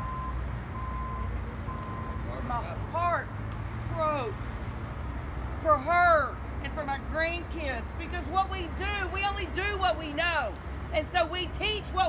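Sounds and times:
vehicle reversing alarm beeping: 0.0 - 2.6.

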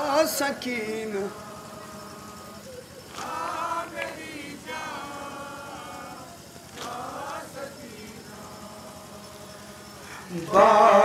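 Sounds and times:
low steady hum: 0.0 - 11.0.

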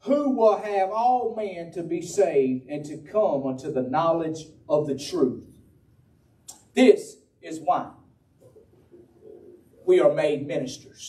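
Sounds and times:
man preaching: 0.0 - 5.5, 6.5 - 8.0, 9.8 - 11.0.

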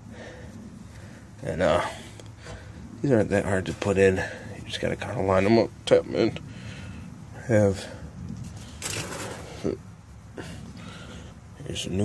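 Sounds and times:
parts being handled: 8.4 - 9.8.

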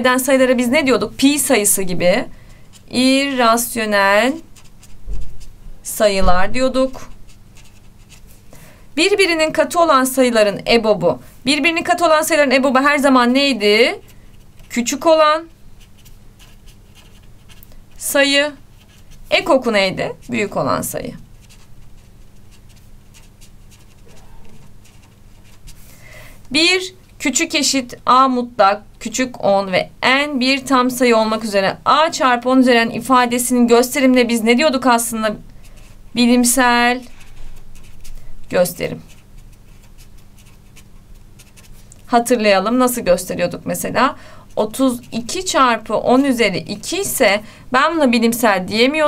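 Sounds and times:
marker writing on paper: 1.6 - 5.5, 6.5 - 8.4, 15.8 - 25.8, 34.8 - 42.3.

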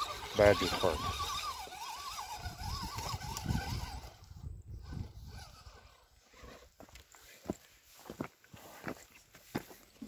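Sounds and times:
toy car electric motor whining: 0.0 - 6.9.

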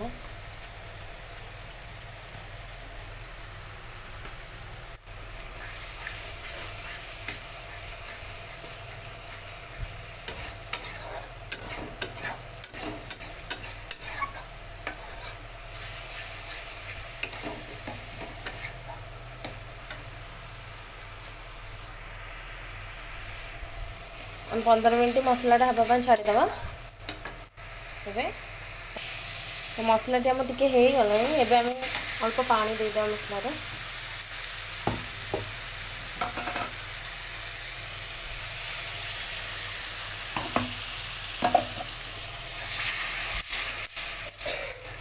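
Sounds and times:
paste sizzling in a pan: 5.1 - 21.0, 21.8 - 45.0
spatula scraping a pan: 5.6 - 19.0, 25.2 - 26.8.

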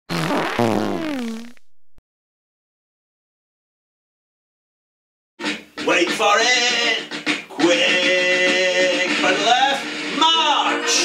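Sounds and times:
loud pitched fart: 0.1 - 1.9.

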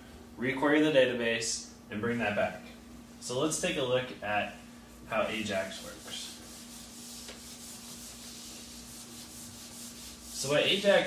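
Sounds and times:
steady low hum: 0.0 - 11.0
eraser rubbing on whiteboard: 5.6 - 11.0.

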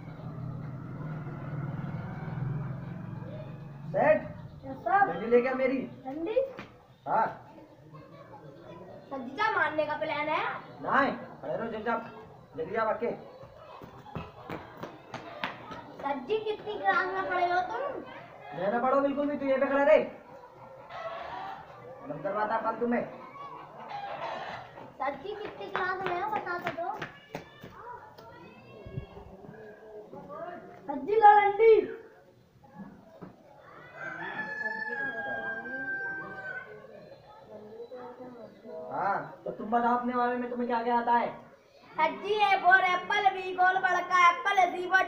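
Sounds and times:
rooster crowing: 20.9 - 22.0, 33.6 - 37.0.

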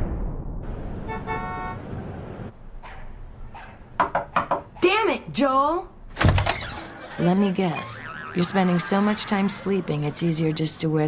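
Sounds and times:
traffic rumble: 0.7 - 11.0
car horn toot: 1.0 - 1.8.

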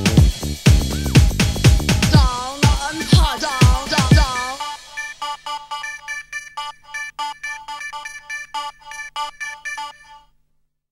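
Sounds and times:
staccato synthesizer riff: 0.0 - 10.2.

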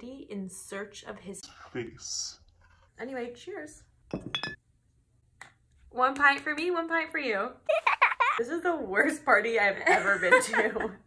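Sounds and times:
glass bottles clinking: 4.1 - 4.6.

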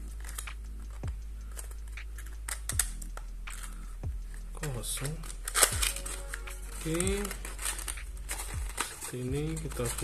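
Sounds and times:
cardboard packaging rustling: 0.0 - 3.8, 4.4 - 10.0
steady low hum: 0.0 - 10.0.

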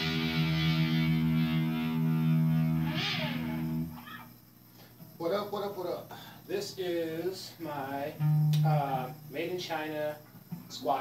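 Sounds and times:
electric guitar low note: 0.0 - 4.0, 8.2 - 9.3.

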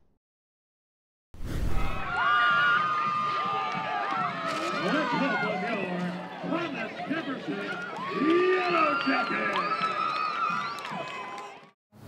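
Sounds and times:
girls cheering and shouting: 2.0 - 5.8.

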